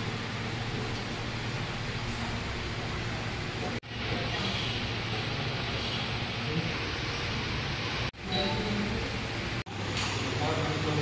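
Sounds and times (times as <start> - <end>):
room noise with low hum: 0.0 - 11.0.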